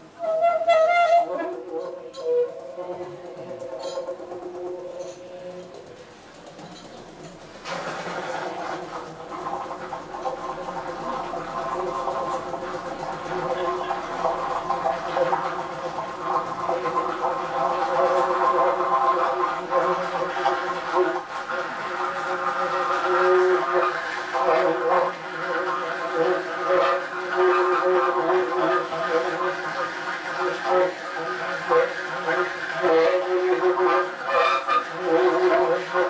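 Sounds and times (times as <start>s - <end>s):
alto saxophone improvising: 0.0s - 6.4s.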